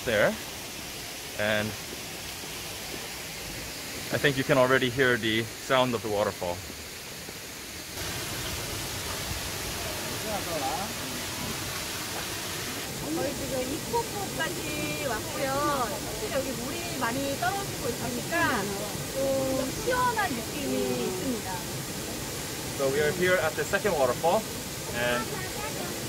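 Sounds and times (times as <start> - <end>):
waterfall rushing: 0.0 - 26.0
person talking: 13.0 - 21.6.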